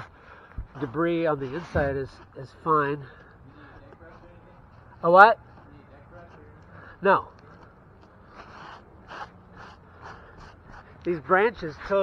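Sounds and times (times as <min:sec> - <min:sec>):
man breathing close to microphone: 0:00.0 - 0:00.8.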